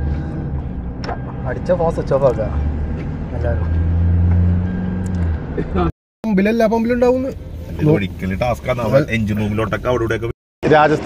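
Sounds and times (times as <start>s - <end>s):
car engine drone: 0.0s - 11.0s
road noise: 0.0s - 11.0s.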